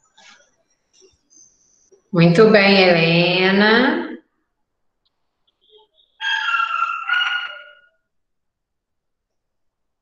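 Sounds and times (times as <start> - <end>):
rooster crowing: 6.2 - 8.0.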